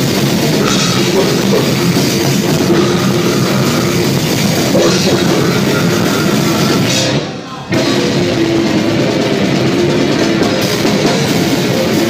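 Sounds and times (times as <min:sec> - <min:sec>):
drum kit with cymbals: 0:00.0 - 0:12.0
heavy distorted guitars and bass: 0:00.0 - 0:12.0.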